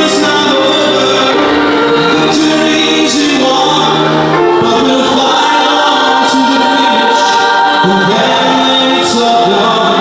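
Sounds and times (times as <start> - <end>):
mixed choir singing held chords: 0.0 - 10.0.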